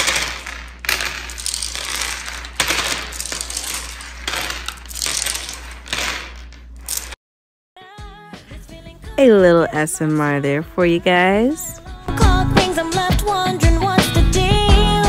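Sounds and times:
beads rattling on a countertop: 0.0s - 7.2s.

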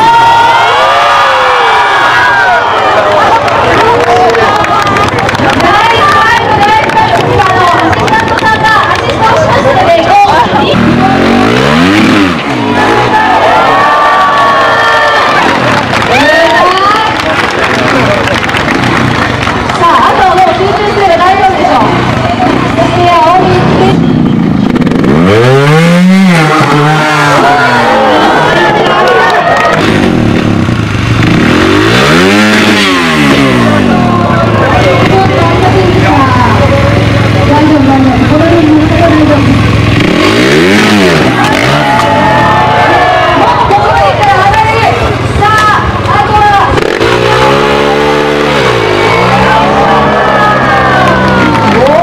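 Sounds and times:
crowd noise and voices: 0.0s - 52.0s
motorcycle engine revving: 0.0s - 52.0s.

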